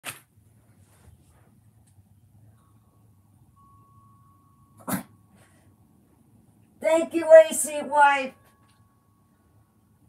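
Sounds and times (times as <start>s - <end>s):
faint steady high tone: 2.2s - 10.0s.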